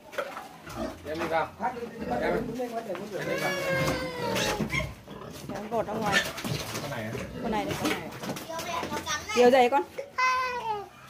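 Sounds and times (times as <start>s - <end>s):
pig squealing: 3.2s - 5.4s.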